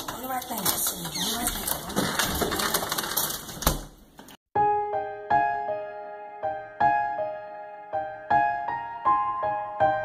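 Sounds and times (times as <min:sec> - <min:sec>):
clicking and rustling: 0:00.0 - 0:04.4
soft piano music: 0:04.6 - 0:10.0.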